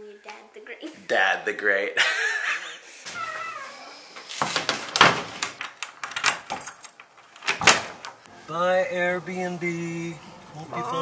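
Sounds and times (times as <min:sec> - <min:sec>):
door latch and key clicking: 0:05.4 - 0:08.2.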